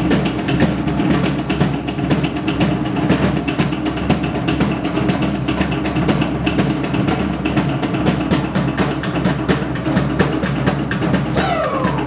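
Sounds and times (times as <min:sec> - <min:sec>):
rapid dance drumming: 0:00.0 - 0:12.0.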